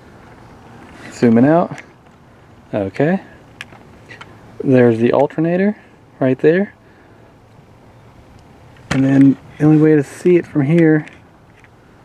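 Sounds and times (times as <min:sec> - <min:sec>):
person speaking: 0:01.0 - 0:02.0, 0:04.1 - 0:06.8, 0:08.8 - 0:11.2.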